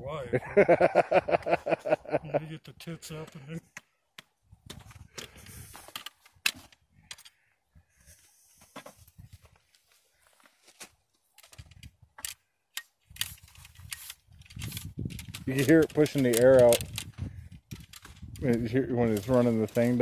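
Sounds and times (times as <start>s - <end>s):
ramrod scraping and tapping: 11.4s - 20.0s.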